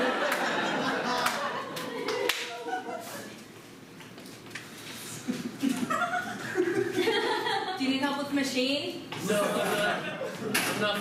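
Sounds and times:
sharp hand claps: 0:01.2 - 0:02.6.

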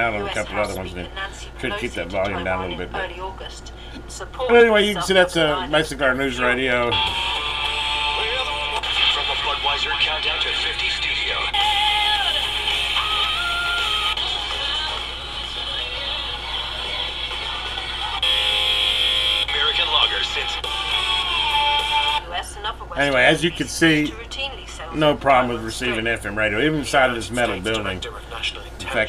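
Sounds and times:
radio talk through small speaker: 0:00.0 - 0:11.7, 0:19.5 - 0:21.2, 0:22.2 - 0:29.0
radio music: 0:00.0 - 0:29.0.

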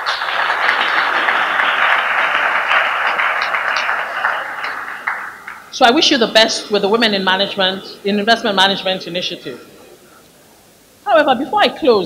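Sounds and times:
audience applauding: 0:00.0 - 0:06.2.

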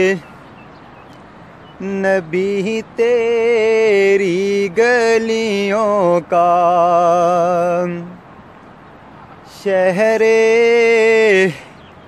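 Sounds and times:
man singing: 0:00.0 - 0:00.3, 0:01.8 - 0:08.2, 0:09.5 - 0:11.8.

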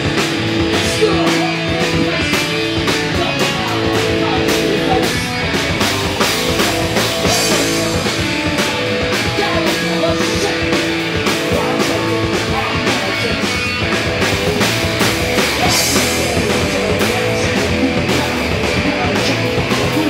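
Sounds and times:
bass guitar: 0:00.0 - 0:20.0
drum and cymbal hits: 0:00.0 - 0:20.0
electric guitar: 0:00.0 - 0:20.0
punk band playing loud: 0:00.0 - 0:20.0.

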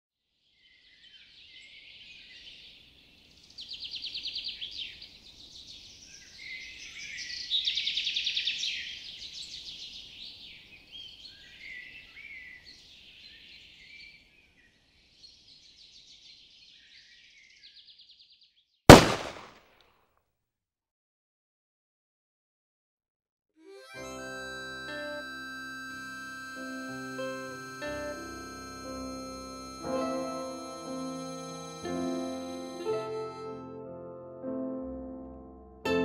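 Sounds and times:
songbirds singing: 0:00.6 - 0:19.3
loud gunshot: 0:18.9 - 0:19.6.

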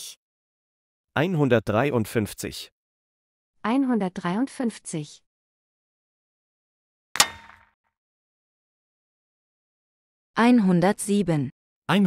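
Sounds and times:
metallic clang: 0:07.2 - 0:07.7.

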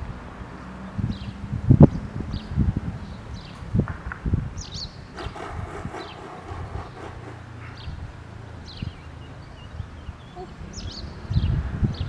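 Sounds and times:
small birds chirping: 0:08.7 - 0:12.0.

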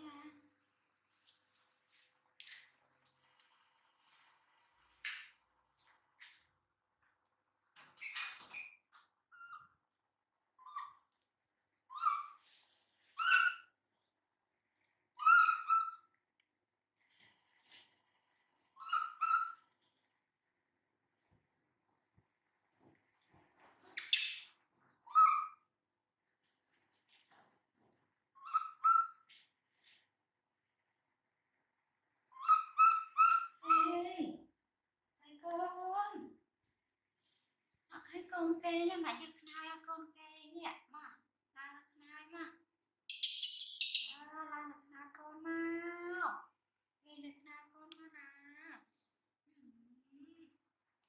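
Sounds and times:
baby monkey squeaky calls: 0:10.6 - 0:11.0, 0:11.9 - 0:12.4, 0:15.2 - 0:16.1, 0:25.1 - 0:25.6, 0:32.4 - 0:33.9, 0:43.1 - 0:44.2.

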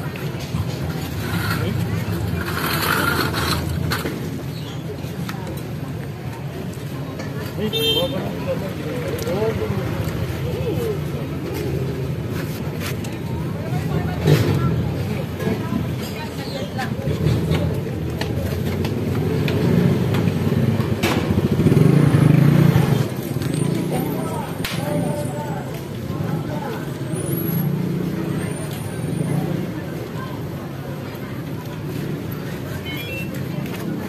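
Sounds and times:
motor traffic going by: 0:00.0 - 0:34.0
indistinct voices talking: 0:21.6 - 0:34.0.

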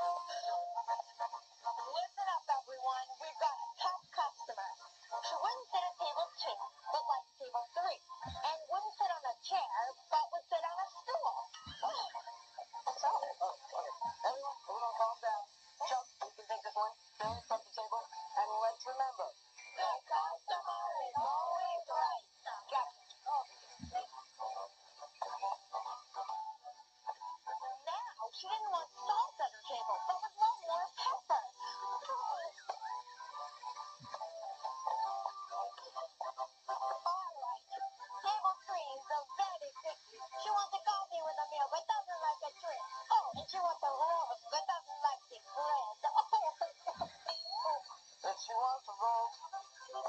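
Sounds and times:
group singing over music on tv: 0:00.0 - 0:50.0.

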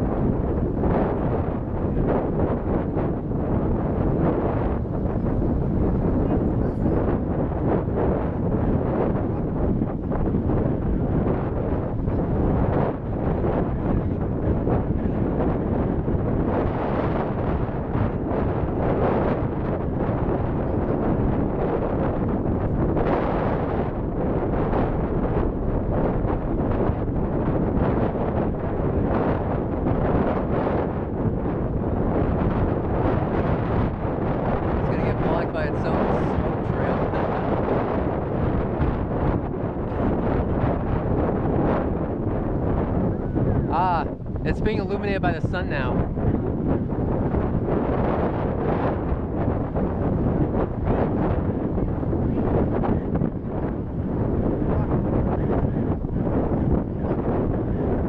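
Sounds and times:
distant rocket engine rumble: 0:00.0 - 0:58.0
wind buffeting microphone: 0:00.0 - 0:58.0.

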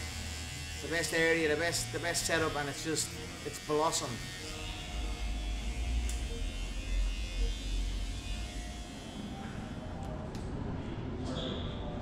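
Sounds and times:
electric hair clippers buzzing: 0:00.0 - 0:09.8.

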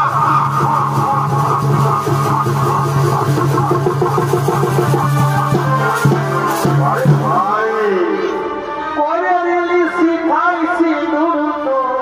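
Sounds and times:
dance accompaniment music: 0:00.0 - 0:08.6.

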